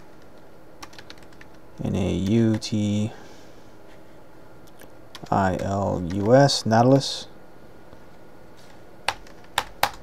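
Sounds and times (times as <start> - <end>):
keyboard keys clicking: 0.3 - 1.6, 9.1 - 10.0.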